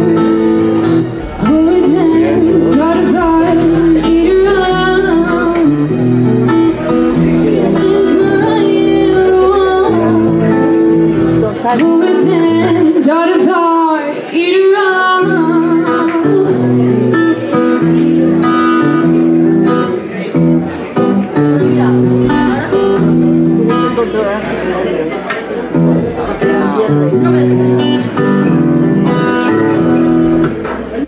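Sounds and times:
person singing: 0.0s - 18.3s
guitar chords: 0.0s - 31.0s.

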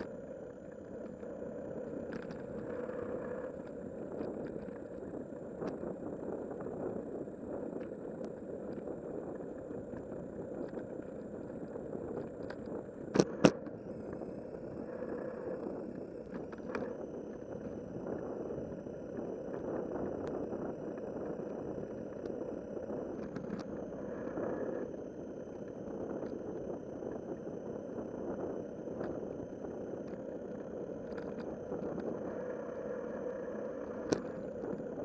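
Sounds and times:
faint ticks: 0.0s - 35.0s.

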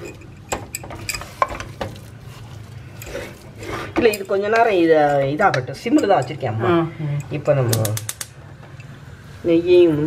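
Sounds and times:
spatula scraping through rice: 2.1s - 4.0s.

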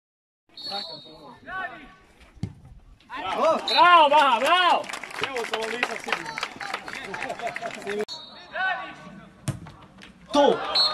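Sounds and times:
football kick thud: 2.4s - 2.8s, 9.4s - 9.8s.

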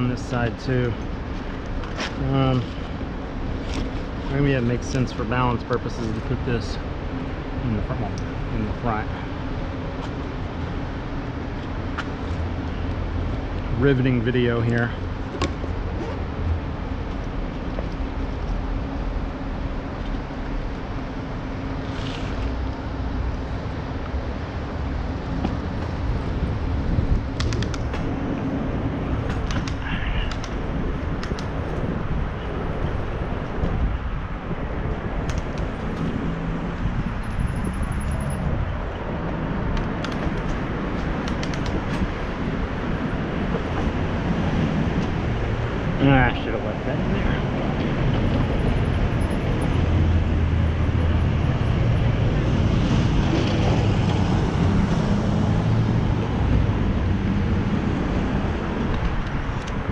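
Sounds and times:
wind on microphone: 25.5s - 46.0s.

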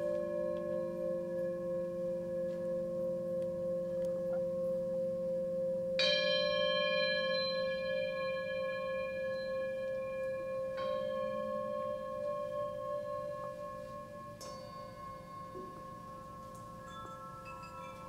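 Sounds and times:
bright struck bowl ring: 0.0s - 18.0s
singing bowls sustained tones: 0.0s - 18.0s.

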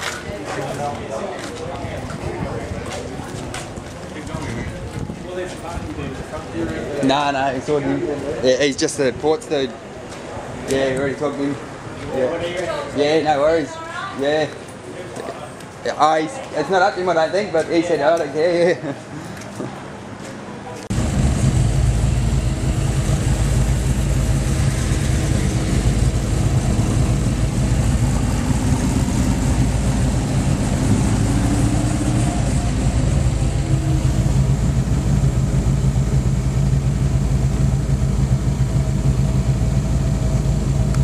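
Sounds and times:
car engine rumbling while driving: 20.9s - 41.0s.

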